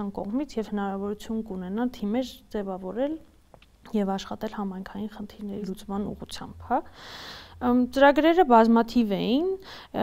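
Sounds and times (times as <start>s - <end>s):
woman talking: 0.0s - 7.0s, 7.6s - 10.0s.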